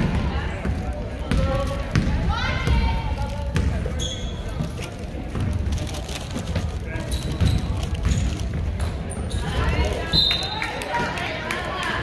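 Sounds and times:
basketball bouncing on hardwood floor: 0:00.0 - 0:02.9, 0:03.5 - 0:03.8.

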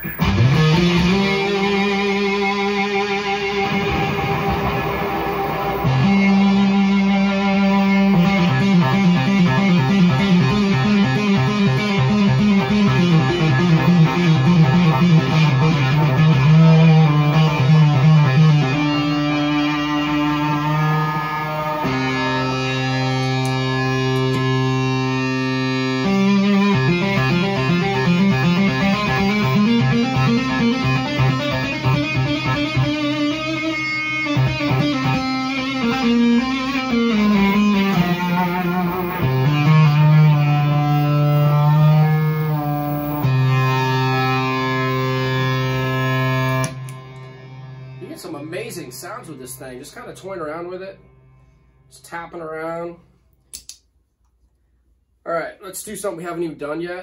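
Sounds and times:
fuzzed electric guitar: 0:00.0 - 0:52.5.

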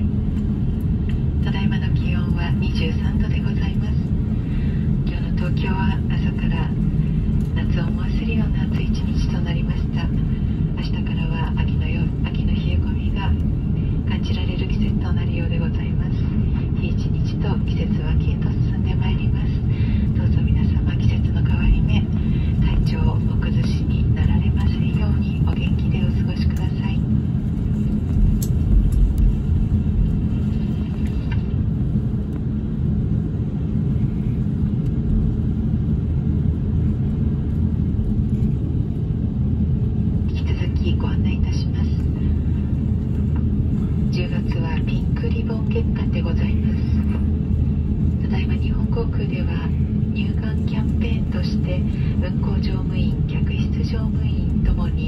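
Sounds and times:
jet engines and cabin air rumble: 0:00.0 - 0:55.0
voices in cabin: 0:00.0 - 0:55.0.

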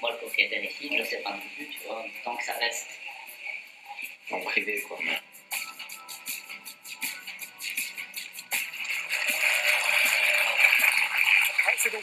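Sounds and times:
audience applauding: 0:08.2 - 0:12.0.

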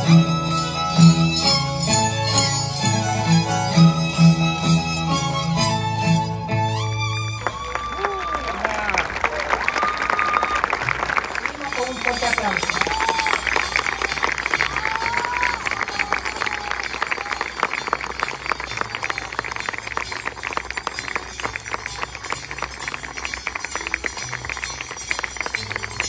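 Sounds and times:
music playing: 0:00.0 - 0:09.5, 0:10.2 - 0:26.0
crowd noise: 0:00.0 - 0:26.0
audience clapping: 0:07.2 - 0:26.0.

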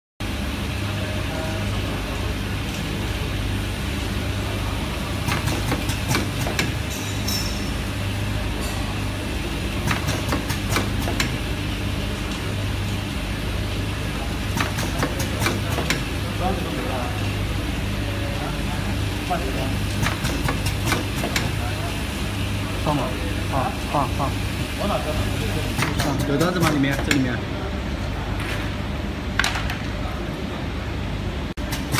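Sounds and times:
low machine hum: 0:00.2 - 0:31.9.

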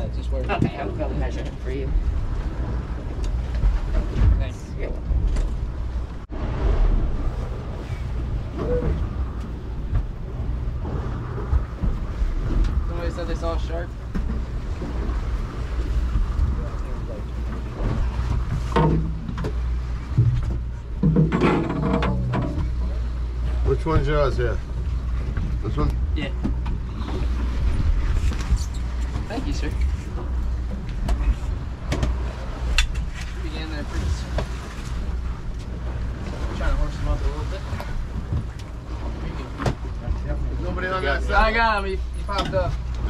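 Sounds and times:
boat engine humming: 0:00.0 - 0:43.0.

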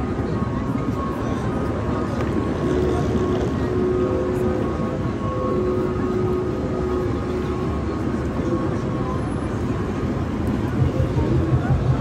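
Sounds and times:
low rumble of traffic: 0:00.0 - 0:12.0
steady mid-pitched hum: 0:00.0 - 0:12.0
voices of passers-by: 0:00.0 - 0:12.0.

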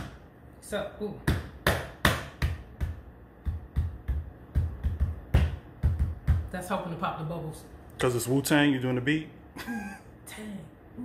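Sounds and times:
rhythmic knocking by hand: 0:01.3 - 0:06.5.

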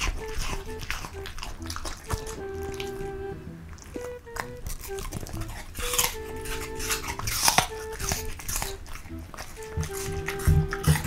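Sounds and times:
dog crunching vegetable: 0:00.0 - 0:03.0, 0:03.7 - 0:11.0
dog licking lips: 0:00.0 - 0:03.0, 0:03.7 - 0:11.0
light background music: 0:00.0 - 0:11.0.

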